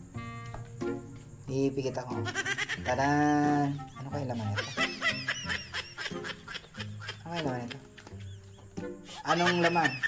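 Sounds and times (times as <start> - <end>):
snickering laughter: 2.2 - 3.1, 3.9 - 10.0.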